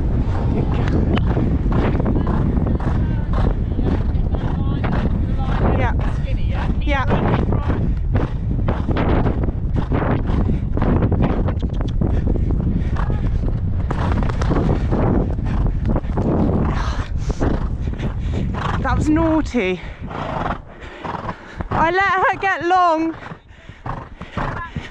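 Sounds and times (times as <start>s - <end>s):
horse hoofbeats on sand: 0.0s - 19.5s, 20.1s - 24.9s
wind rushing over microphone: 0.0s - 24.9s.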